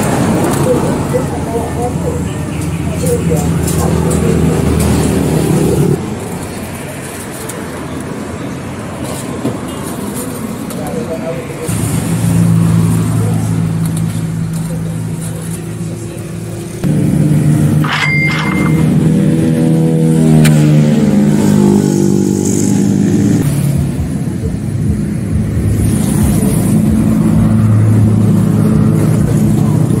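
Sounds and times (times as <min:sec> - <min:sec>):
vehicle engine droning: 0:10.2 - 0:30.0.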